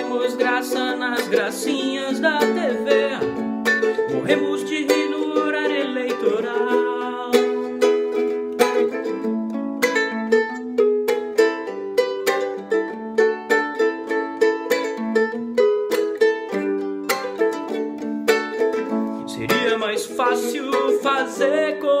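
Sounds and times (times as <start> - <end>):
ukulele strumming: 0.0 - 22.0.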